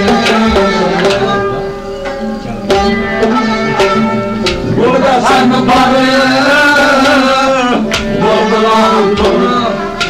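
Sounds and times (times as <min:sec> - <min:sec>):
man singing a folk song: 0:00.0 - 0:01.7, 0:03.3 - 0:10.0
instrumental accompaniment: 0:00.0 - 0:10.0.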